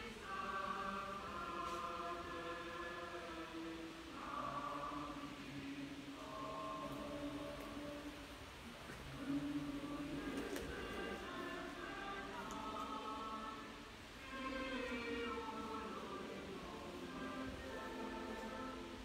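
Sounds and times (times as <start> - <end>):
choir chanting: 0.0 - 19.0.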